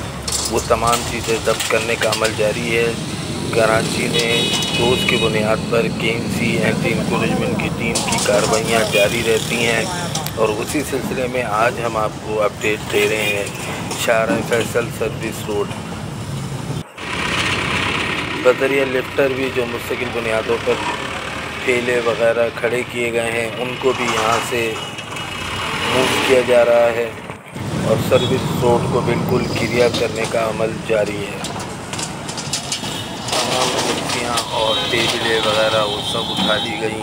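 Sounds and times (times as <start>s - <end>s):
low traffic rumble: 0.0s - 37.0s
forklift engine running: 15.8s - 22.2s, 23.6s - 28.3s
vehicle engine running: 16.9s - 22.2s.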